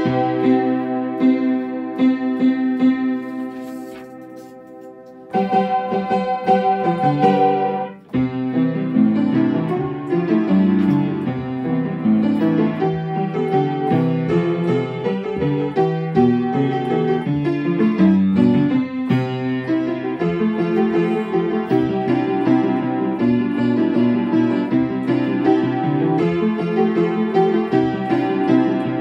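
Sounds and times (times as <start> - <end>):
piano playing children's song: 0.0 - 29.0.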